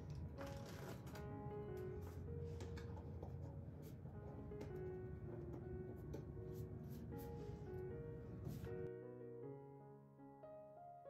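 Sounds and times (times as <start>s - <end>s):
soft keyboard music: 0.0s - 11.0s.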